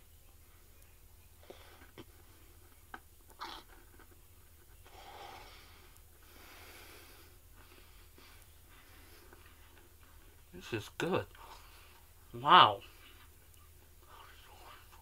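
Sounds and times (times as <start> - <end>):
soft breaths: 0.0 - 15.0.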